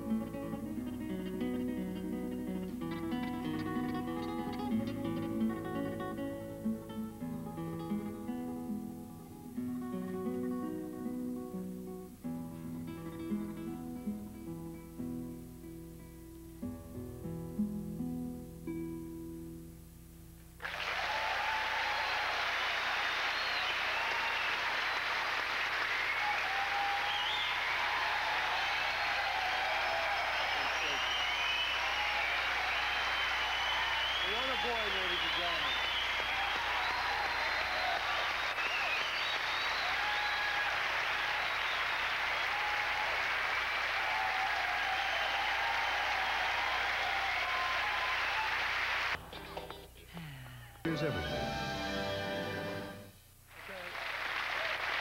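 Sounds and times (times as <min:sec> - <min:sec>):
people cheering: 0:20.6 - 0:49.2, 0:53.6 - 0:55.0
studio audience applauding: 0:20.6 - 0:49.2, 0:53.5 - 0:55.0.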